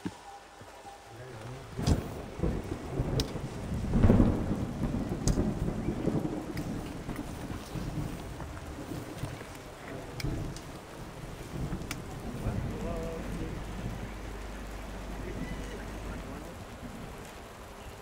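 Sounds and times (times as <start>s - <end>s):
rain falling: 0.0s - 18.0s
sharp taps of raindrops: 0.0s - 18.0s
thunder rumbling: 1.1s - 18.0s.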